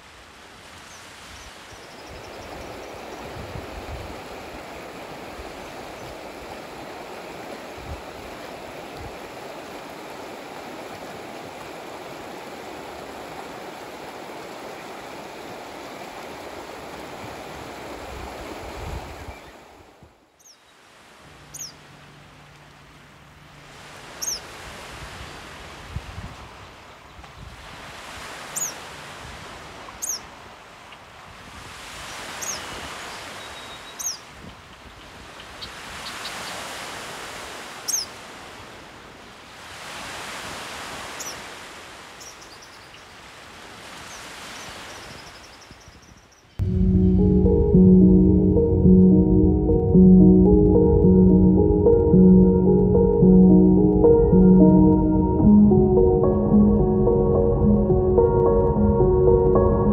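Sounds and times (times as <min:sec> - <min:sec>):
small waves washing onto shore: 0:00.0 - 0:46.0
bird chirping: 0:21.5 - 0:21.8.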